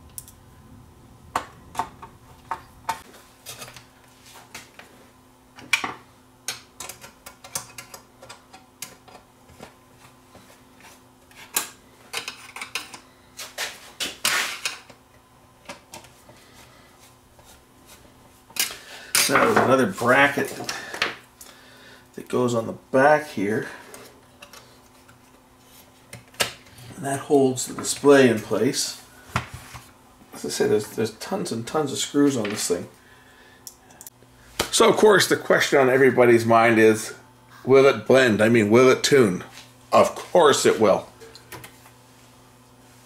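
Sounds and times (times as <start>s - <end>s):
person speaking: 19.2s - 21.0s, 26.9s - 29.1s, 30.3s - 32.9s, 34.7s - 41.2s.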